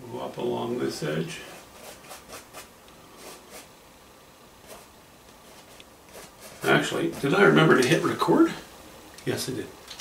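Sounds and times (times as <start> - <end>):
paintbrush scratching on canvas: 1.4 - 3.7, 4.6 - 7.8.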